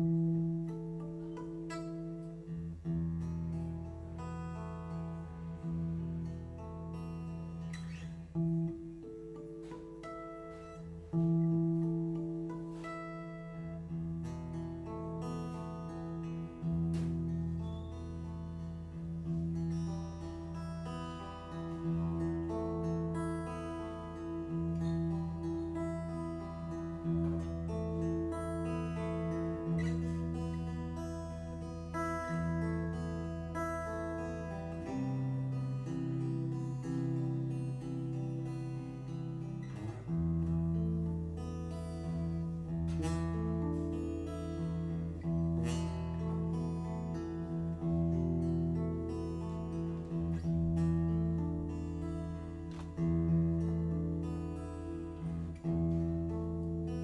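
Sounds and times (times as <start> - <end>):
fingerpicked acoustic guitar: 0.0 - 57.0.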